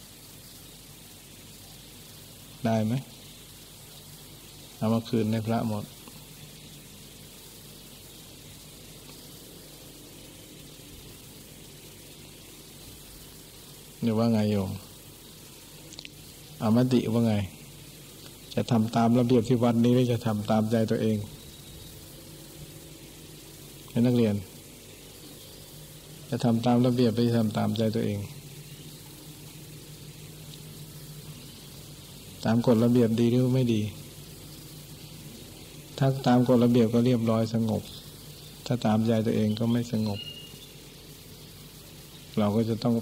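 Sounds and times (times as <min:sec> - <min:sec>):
faint steady hiss: 0:00.0 - 0:43.0
low steady hum: 0:00.0 - 0:43.0.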